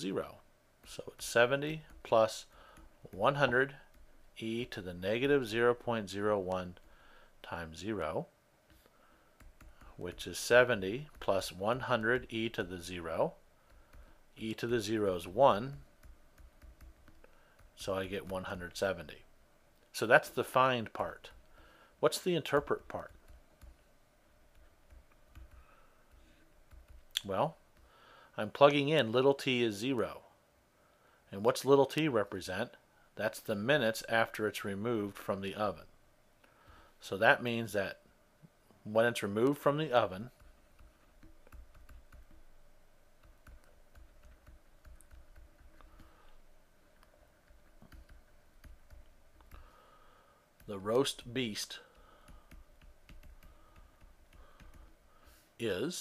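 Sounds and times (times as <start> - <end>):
stylus tapping on tablet: 1.7 - 4.8, 8.7 - 10.3, 11.0 - 18.8, 22.5 - 27.9, 40.3 - 46.4, 47.0 - 49.7, 51.9 - 55.1.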